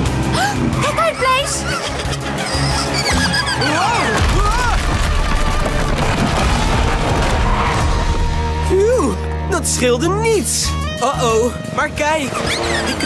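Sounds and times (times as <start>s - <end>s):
background music: 0.0s - 13.0s
cartoon explosion and crash: 4.1s - 8.2s
rumbling rubble collapsing: 4.1s - 8.4s.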